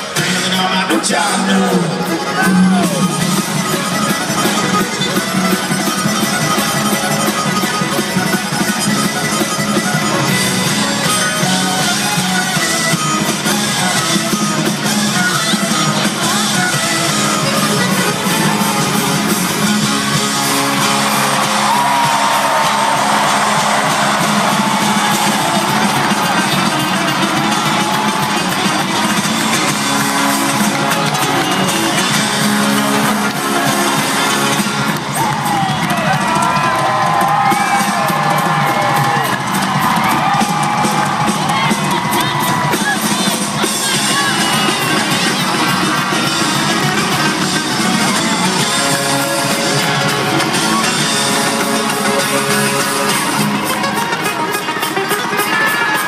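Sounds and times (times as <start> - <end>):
live country-rock band playing: 0.0 - 56.0
audience cheering and whooping: 18.2 - 56.0.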